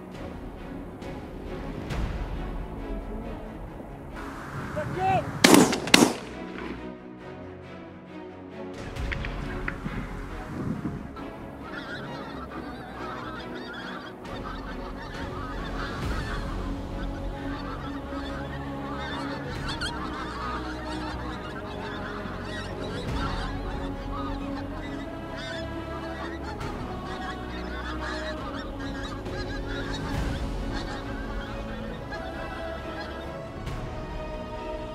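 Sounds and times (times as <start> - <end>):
geese honking in flight: 4.2 - 6.9, 9.2 - 34.9.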